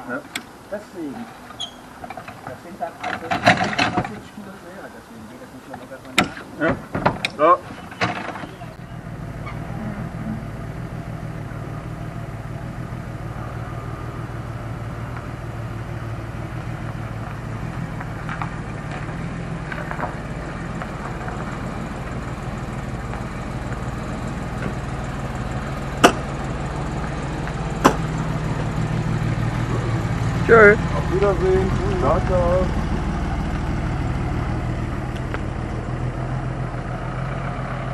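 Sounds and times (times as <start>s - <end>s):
car engine running at low revs: 5.3s - 37.9s.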